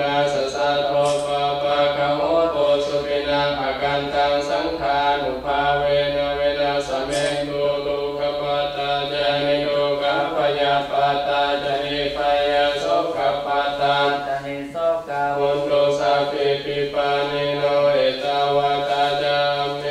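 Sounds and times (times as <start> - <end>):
monks chanting: 0.0 - 19.9.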